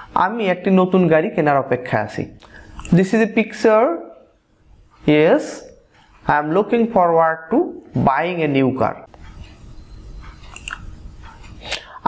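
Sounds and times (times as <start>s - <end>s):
low steady hum: 0.0s - 12.0s
speech: 0.1s - 4.3s, 5.0s - 9.1s.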